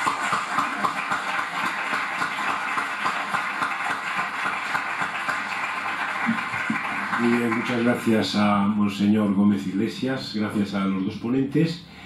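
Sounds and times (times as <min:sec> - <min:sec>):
audience applause: 0:00.0 - 0:08.5.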